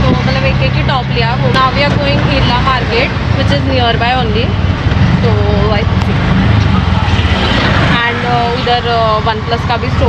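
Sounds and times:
engine rumble and road noise: 0:00.0 - 0:10.0.

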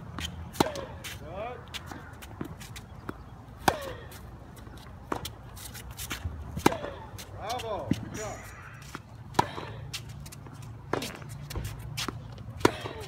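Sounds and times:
tennis ball bounces: 0:00.1 - 0:08.2, 0:08.8 - 0:13.0
coach calling out: 0:07.4 - 0:08.9.

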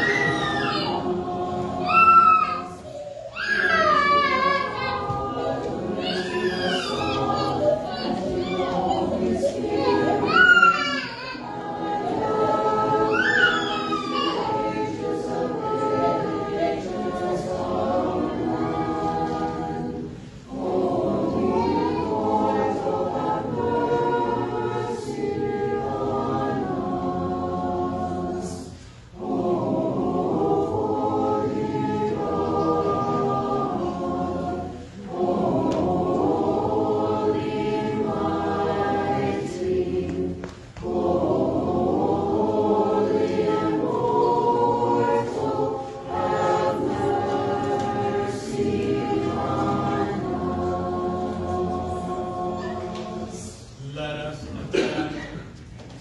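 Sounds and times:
choir singing a cappella hymn: 0:00.0 - 0:56.0.

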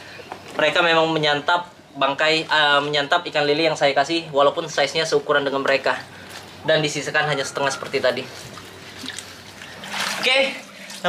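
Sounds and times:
man speaking: 0:00.6 - 0:08.4
water splashing and trickling: 0:08.4 - 0:11.0.

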